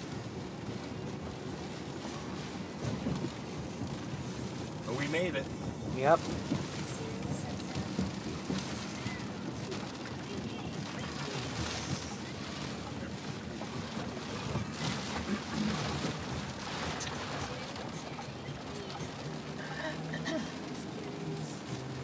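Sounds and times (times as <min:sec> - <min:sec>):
engine and tyres on wet road: 0:00.0 - 0:22.0
rain hitting car: 0:00.0 - 0:22.0.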